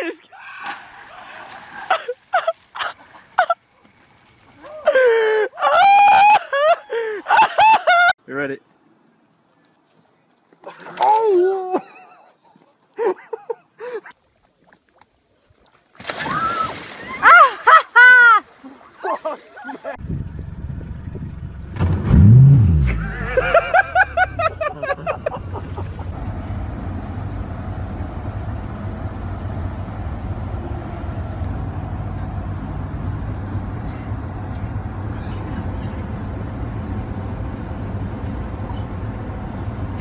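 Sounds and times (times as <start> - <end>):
water splashing: 14.2 - 20.0
wind and water rumble: 14.2 - 40.0
outboard motor running: 20.0 - 26.5.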